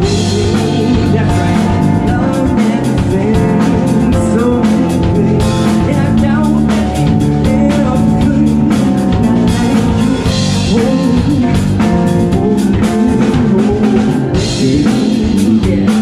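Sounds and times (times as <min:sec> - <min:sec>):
drum kit: 0:00.0 - 0:16.0
electric bass guitar: 0:00.0 - 0:16.0
keyboard: 0:00.0 - 0:16.0.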